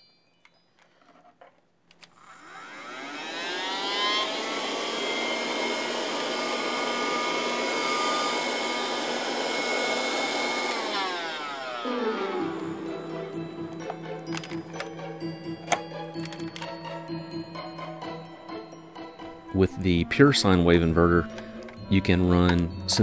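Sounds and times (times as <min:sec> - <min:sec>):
handheld vacuum cleaner motor whining: 0:02.0 - 0:18.2.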